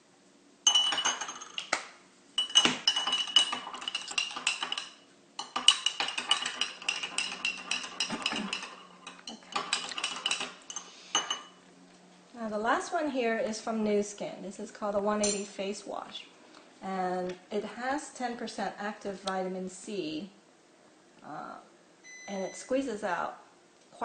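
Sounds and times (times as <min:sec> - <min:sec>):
spoon clinking in glass: 0:00.7 - 0:01.7, 0:02.4 - 0:11.6, 0:15.2 - 0:15.5.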